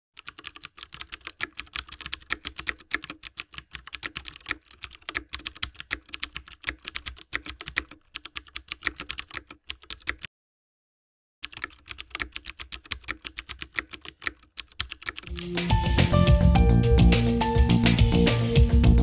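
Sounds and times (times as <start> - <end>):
keyboard key clicks: 11.4 - 15.4.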